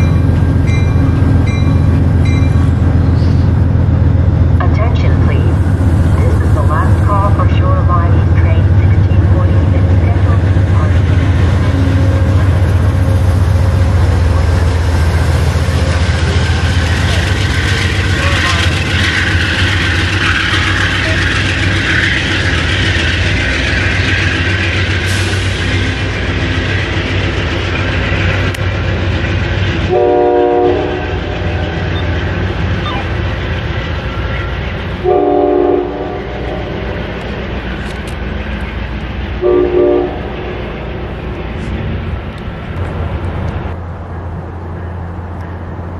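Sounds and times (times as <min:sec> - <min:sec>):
wheels on rails: 0:00.0 - 0:30.0
locomotive drone: 0:00.0 - 0:45.9
train horn blasts: 0:29.9 - 0:31.8, 0:35.0 - 0:36.6, 0:39.4 - 0:40.3.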